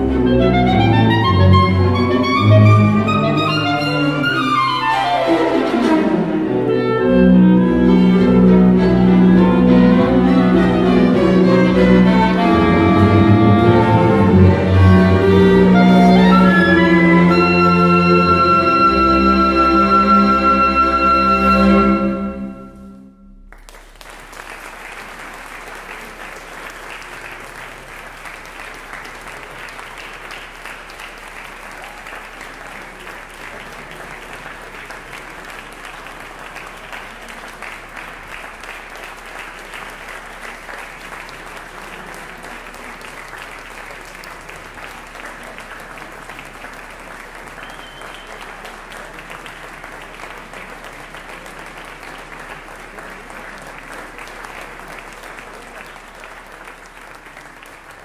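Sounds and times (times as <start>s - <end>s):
audience applauding: 0.0s - 58.0s.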